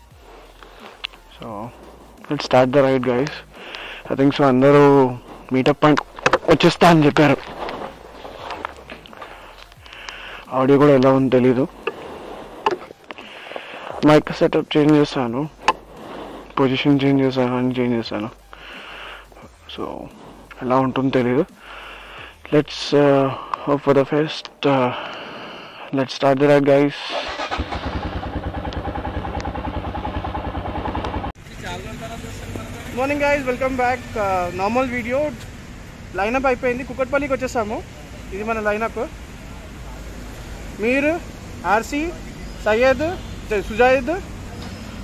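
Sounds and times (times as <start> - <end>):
motorcycle engine running: 27.2 - 42.6.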